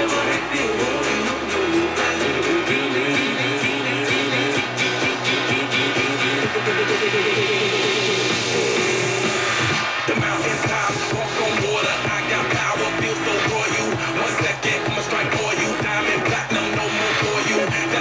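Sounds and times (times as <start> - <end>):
music on radio broadcast: 0.0 - 18.0.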